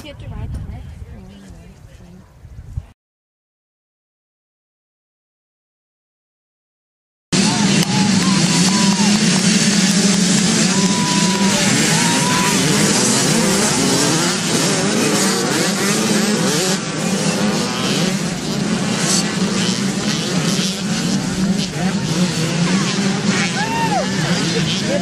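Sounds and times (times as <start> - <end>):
dirt bike engines revving: 7.4 - 25.0.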